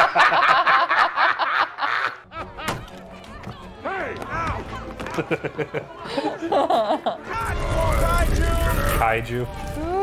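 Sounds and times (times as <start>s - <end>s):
adults laughing loudly: 0.0s - 2.8s, 5.0s - 7.4s.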